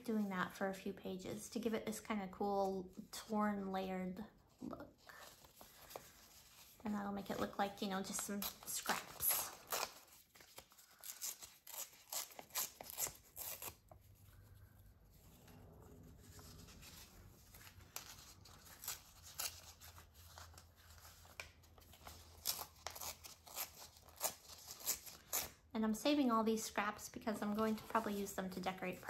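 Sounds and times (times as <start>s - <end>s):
paper rustling: 5.0s - 25.5s
paper tearing: 8.1s - 14.0s, 16.3s - 25.6s.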